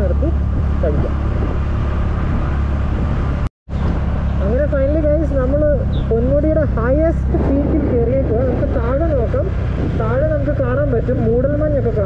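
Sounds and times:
steady low hum: 4.1 - 10.8.

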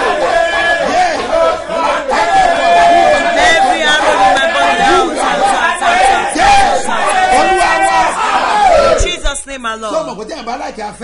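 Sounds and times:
man shouting a prayer: 0.0 - 9.1
voices praying together: 0.0 - 11.0.

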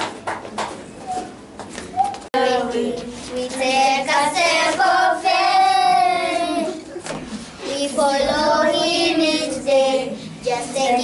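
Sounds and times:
young children singing: 2.4 - 7.0, 7.6 - 11.0.

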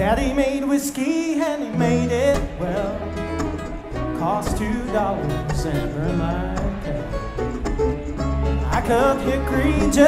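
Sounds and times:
man singing: 0.0 - 7.5, 8.5 - 10.0
bluegrass string band playing: 1.8 - 10.0.

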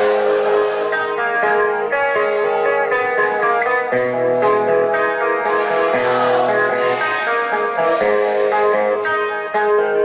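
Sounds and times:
electric guitar: 0.0 - 10.0
rock band playing ballad: 0.0 - 10.0.

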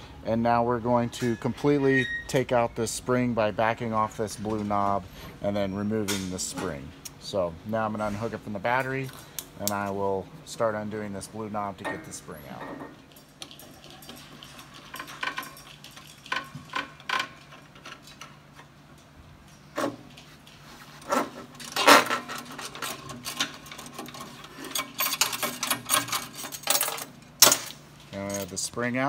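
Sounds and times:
metal clinks and scrapes: 12.0 - 18.7, 19.4 - 28.7.

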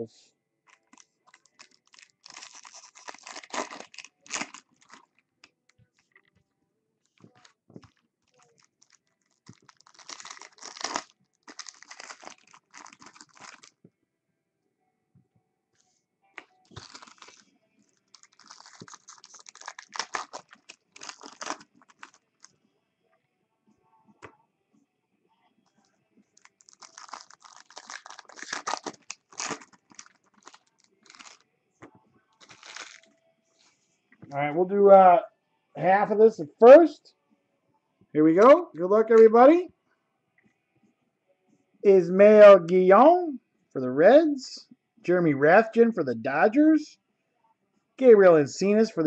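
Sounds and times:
foil wrappers crinkling: 0.7 - 5.2, 7.1 - 13.8, 16.7 - 22.5, 26.4 - 31.4, 32.4 - 33.1.

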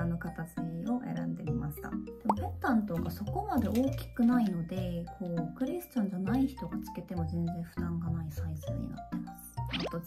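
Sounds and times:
soft background music: 0.0 - 10.0
woman talking: 0.0 - 10.0.

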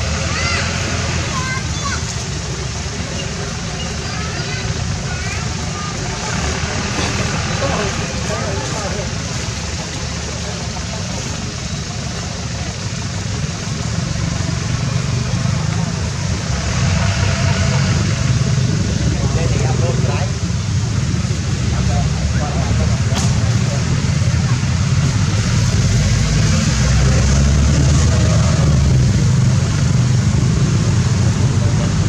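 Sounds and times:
people talking: 0.0 - 32.0.

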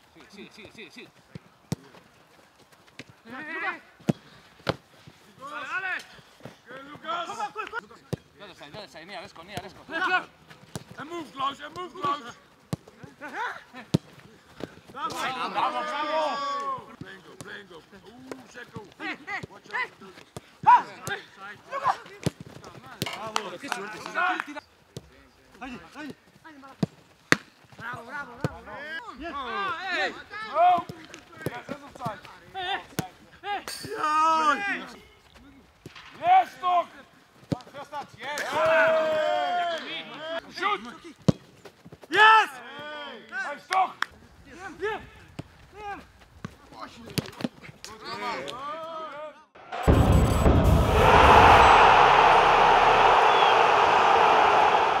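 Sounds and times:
deep boom: 49.6 - 55.0
players shouting: 49.6 - 55.0
steady rushing noise: 49.6 - 55.0.

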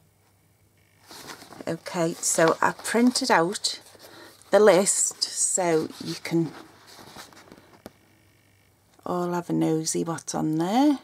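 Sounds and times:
faint handling noise: 1.0 - 8.0.

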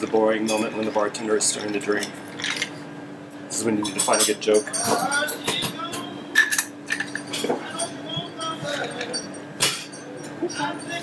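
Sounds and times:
ice and spoon clinking in glass: 6.4 - 11.0.

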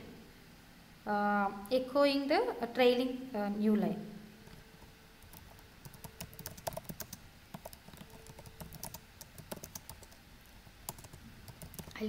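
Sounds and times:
computer keyboard typing: 4.5 - 12.0.

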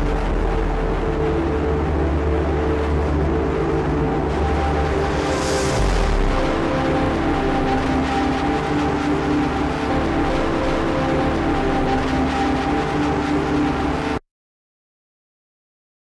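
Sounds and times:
instrumental music with held chords: 0.0 - 14.2.

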